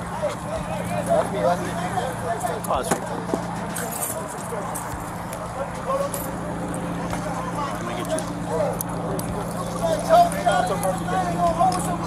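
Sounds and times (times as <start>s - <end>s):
indistinct voices talking: 0.0s - 12.0s
low hum of road traffic: 0.0s - 12.0s.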